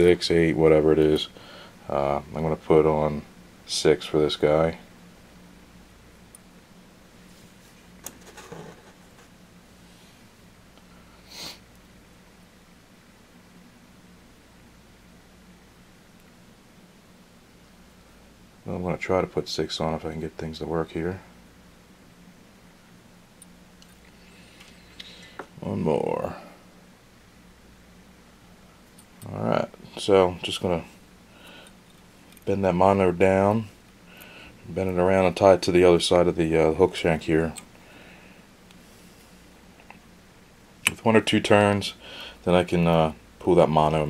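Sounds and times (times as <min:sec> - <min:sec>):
faint steady hum: 0:00.0 - 0:44.0.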